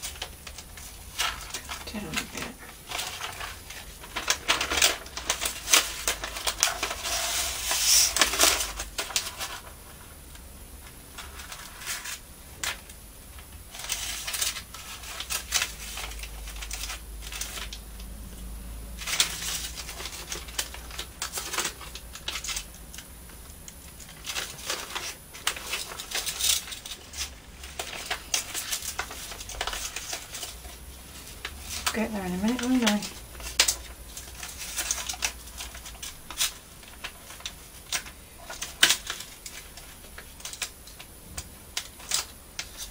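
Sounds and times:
plastic sheet crinkling: 0.0 - 18.0, 18.9 - 42.9.

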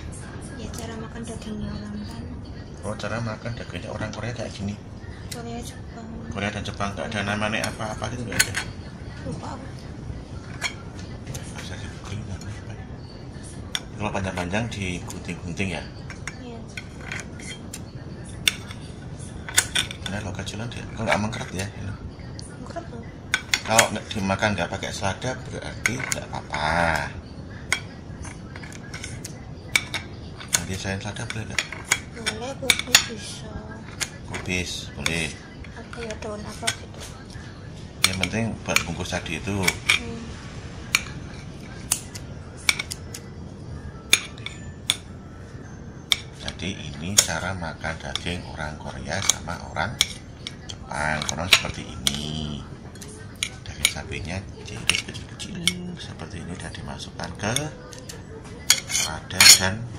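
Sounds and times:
metal tongs clinking on grill pan: 57.5 - 59.7.

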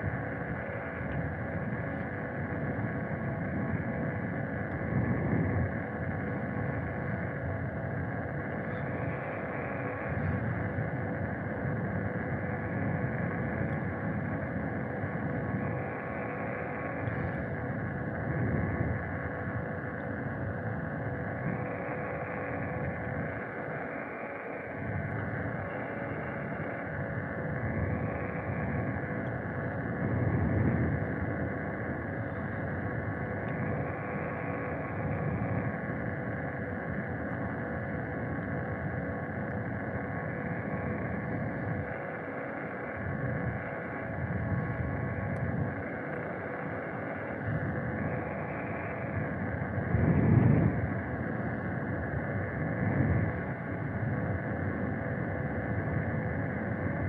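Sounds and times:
motor hum with fixed tones: 0.0 - 57.0
wind rumble on microphone: 0.0 - 57.0.

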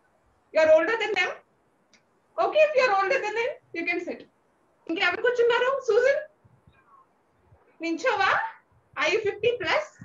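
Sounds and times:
woman speaking: 0.6 - 1.4, 2.4 - 4.3, 4.9 - 6.3, 7.8 - 10.0.

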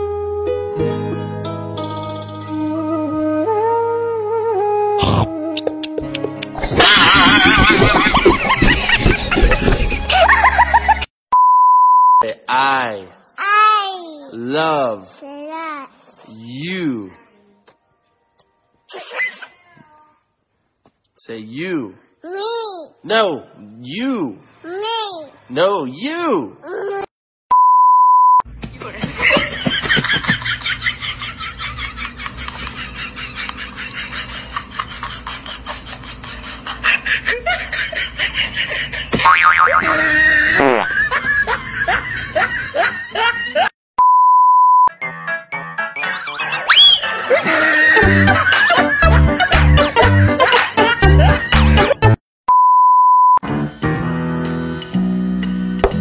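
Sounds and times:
censor bleep: 11.3 - 12.2, 27.5 - 28.4, 44.0 - 44.9, 52.5 - 53.4
cartoon sweeping sound effect: 46.0 - 47.2
high-pitched meow-like squeal: 46.7 - 47.0.

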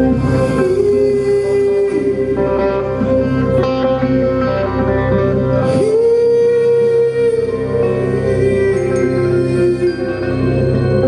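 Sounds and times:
guitar: 0.0 - 11.0
person singing: 0.0 - 11.0
rock band playing: 0.0 - 11.0.

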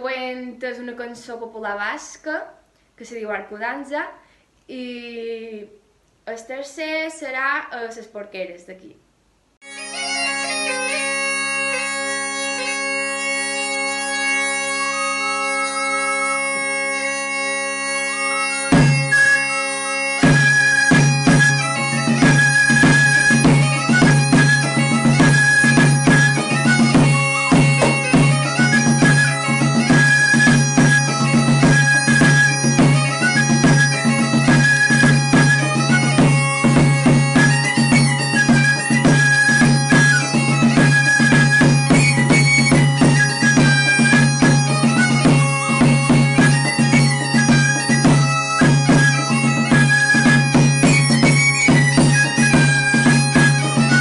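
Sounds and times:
bagpipes playing drone and melody: 9.6 - 54.0
high flute melody: 9.6 - 54.0
drum beat: 18.7 - 19.2, 20.2 - 54.0.

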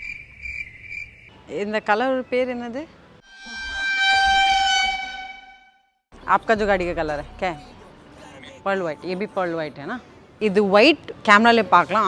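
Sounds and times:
held horn-like tone: 3.2 - 5.9.

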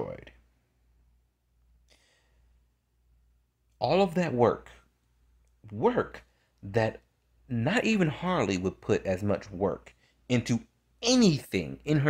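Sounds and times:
faint breath: 1.9 - 2.7.

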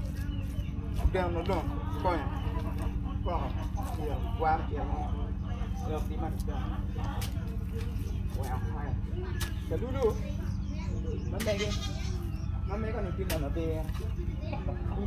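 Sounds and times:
people talking: 0.0 - 15.0
steady low hum: 0.0 - 15.0.

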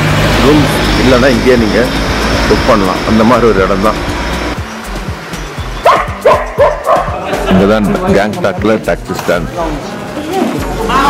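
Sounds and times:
background music: 0.0 - 11.0
dog barking: 5.8 - 7.2.

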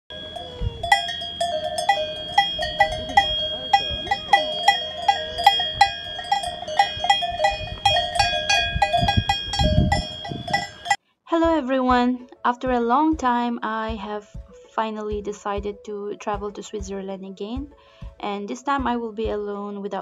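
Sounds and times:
cowbells clanking: 0.1 - 11.0.

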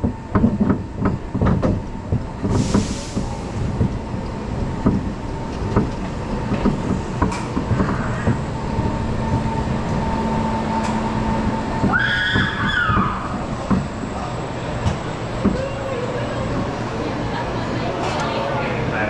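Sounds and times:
knocks and rattles: 0.0 - 2.6, 4.7 - 9.5
roller coaster train rumbling: 0.0 - 19.0.

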